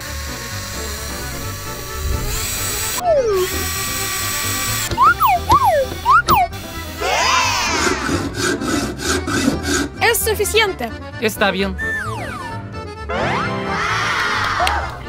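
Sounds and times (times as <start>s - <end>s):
cordless drill whirring: 0.0s - 6.8s
swooping cartoon tones: 4.9s - 8.0s
cartoon whistles: 11.8s - 12.6s.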